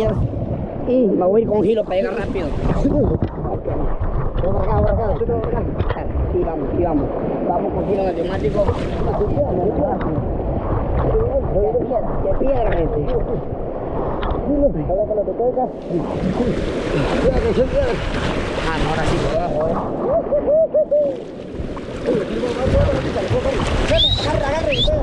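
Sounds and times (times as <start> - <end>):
river water rushing: 15.7 - 20.4, 21.1 - 24.8
loud water splashing: 15.8 - 25.0
people calling: 20.0 - 21.4.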